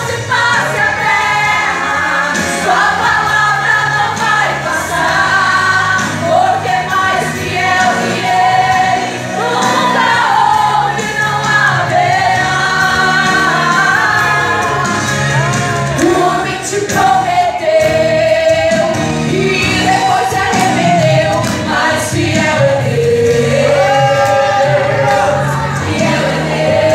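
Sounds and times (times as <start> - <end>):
live band with electric guitar: 0.0 - 26.9
two women singing: 0.0 - 26.9.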